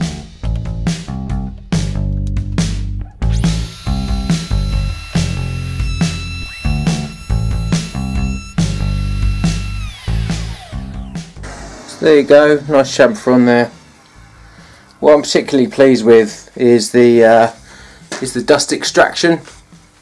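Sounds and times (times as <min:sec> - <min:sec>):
background music with beat: 0:00.0 - 0:15.7, 0:17.1 - 0:20.0
router whining cutting wood: 0:03.3 - 0:11.3.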